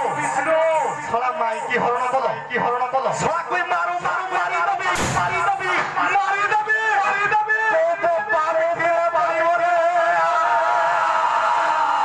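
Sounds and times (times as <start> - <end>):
man declaiming through loudspeakers: 0.0 - 10.4
sudden loud bang: 5.0 - 6.0.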